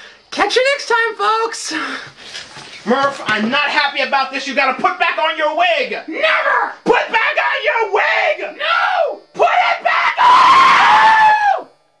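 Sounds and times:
man screaming: 0:06.1 - 0:11.7.

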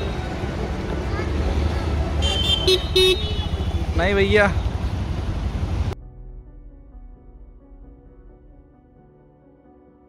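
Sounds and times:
road traffic rumbling: 0:00.0 - 0:06.0
vehicle horn honking: 0:02.2 - 0:05.0.

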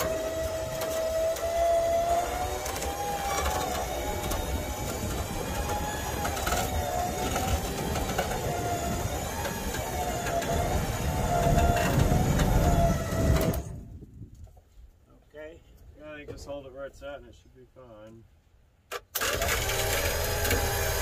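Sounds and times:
winch motor whining: 0:00.0 - 0:13.8, 0:19.1 - 0:21.0.

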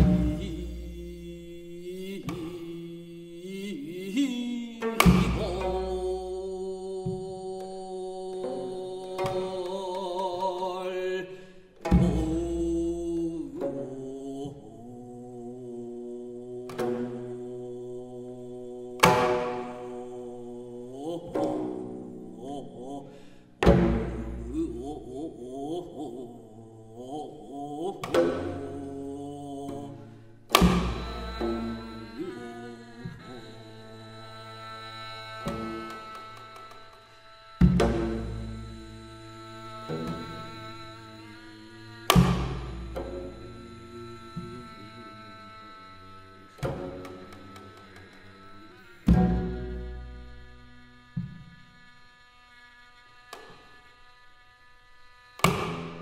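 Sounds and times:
low plucked string tones: 0:00.0 - 0:02.8, 0:04.8 - 0:07.4, 0:11.8 - 0:14.2, 0:21.2 - 0:22.7, 0:23.6 - 0:25.2, 0:28.0 - 0:33.5, 0:37.6 - 0:41.3, 0:42.1 - 0:45.7, 0:46.6 - 0:51.6
bowed fiddle slow melody: 0:00.0 - 0:56.0
traditional court ensemble: 0:00.0 - 0:56.0
sharp accompanying stroke: 0:30.5 - 0:50.8.

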